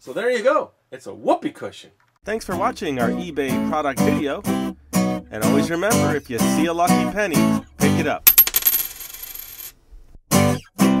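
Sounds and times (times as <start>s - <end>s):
coin ringing and rattling: 8.3s - 9.8s.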